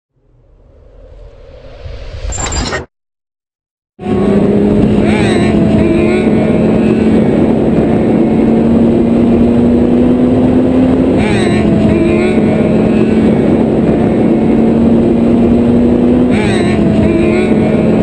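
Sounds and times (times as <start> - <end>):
wind rushing noise: 0.2 - 2.9, 4.0 - 18.0
motorcycle engine drone: 4.0 - 18.0.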